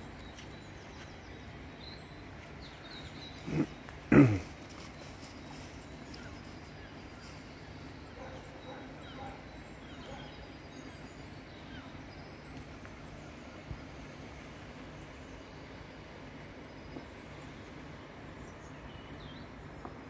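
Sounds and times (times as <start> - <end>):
bird chirps: 0.0 - 13.7.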